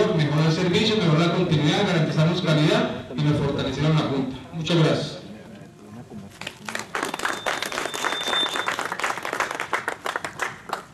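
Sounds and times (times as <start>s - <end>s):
audience applauding: 6.4s - 10.9s.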